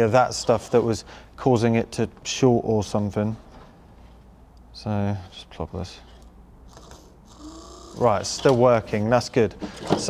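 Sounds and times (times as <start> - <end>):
small electric motor whir: 6.7 - 8.1.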